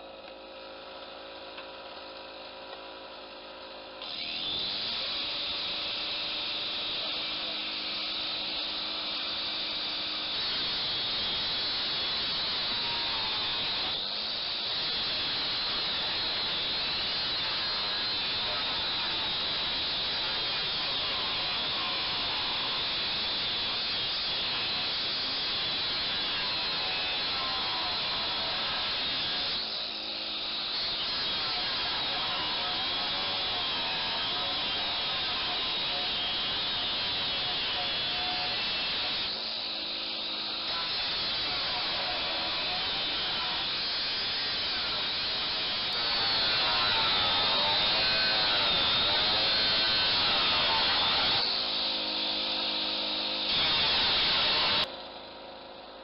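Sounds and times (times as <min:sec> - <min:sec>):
angle grinder cutting steel: 0:03.6 - 0:54.9.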